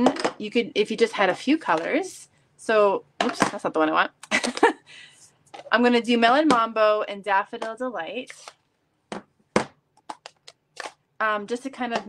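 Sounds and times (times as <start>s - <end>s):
plastic cases knocking and clicking: 9.1s - 11.0s, 11.8s - 12.0s.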